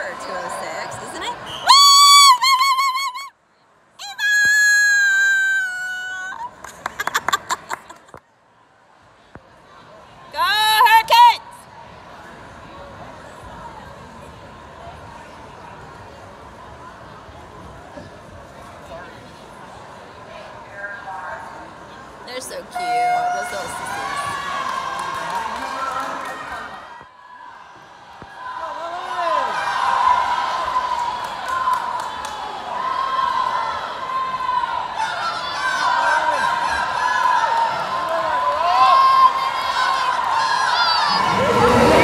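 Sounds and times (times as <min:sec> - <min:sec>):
crowd calling out and cheering: 0:00.0 - 0:42.0.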